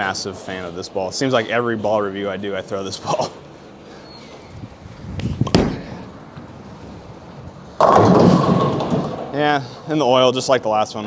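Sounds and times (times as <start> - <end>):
bowling ball crashing into pins: 7.8 - 9.4.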